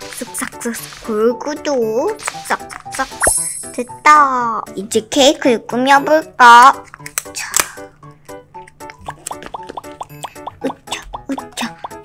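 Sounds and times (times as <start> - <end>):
bouncy plucked background music: 0.0 - 12.0.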